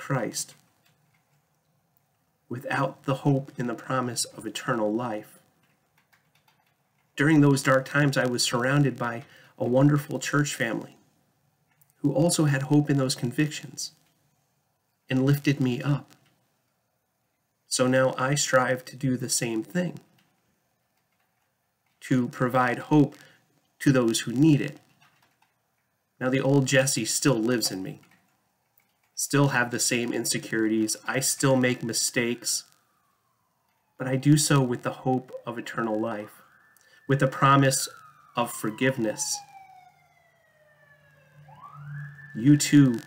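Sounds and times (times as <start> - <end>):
faint emergency siren wailing: 2.3 - 5.6, 25.6 - 43.0.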